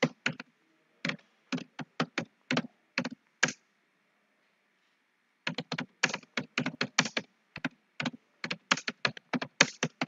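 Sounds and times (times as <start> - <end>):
computer keyboard typing: 0.0 - 3.6, 5.5 - 10.0.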